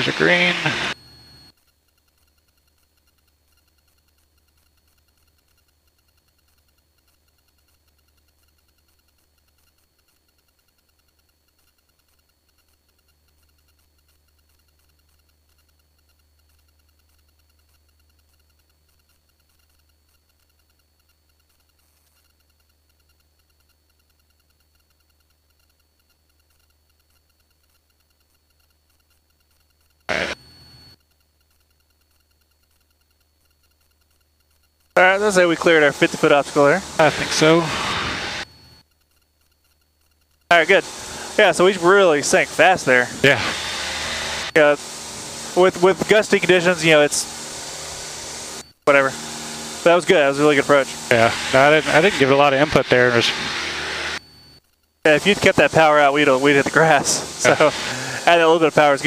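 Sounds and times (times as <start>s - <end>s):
faint aircraft engine drone: 0.0s - 59.0s
loud burst: 35.4s - 38.4s, 40.5s - 54.2s, 55.1s - 59.0s.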